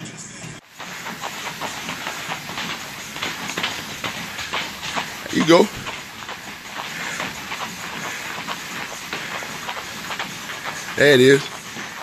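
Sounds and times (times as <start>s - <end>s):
battle ropes slapping floor: 0.6s - 12.0s.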